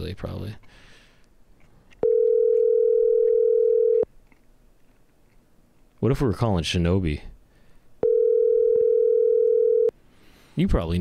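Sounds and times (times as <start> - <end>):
telephone ringback tone: 2.0 - 4.0, 8.0 - 9.9.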